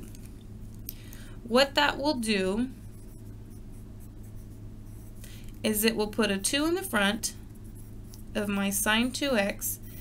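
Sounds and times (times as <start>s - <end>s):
faint low hum: 0.0s - 10.0s
pencil writing on paper: 2.9s - 5.2s.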